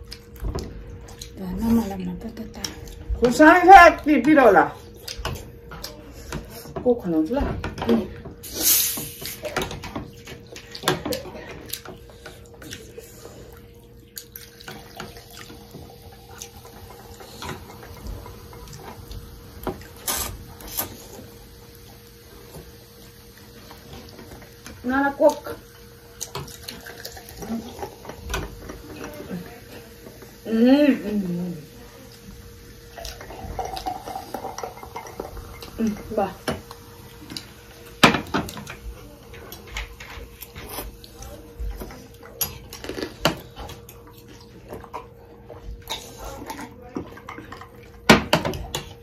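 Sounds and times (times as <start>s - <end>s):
slurping and chewing noodles: 8.4s - 21.4s, 39.6s - 48.0s
cola pouring over ice fizzing: 32.9s - 35.8s.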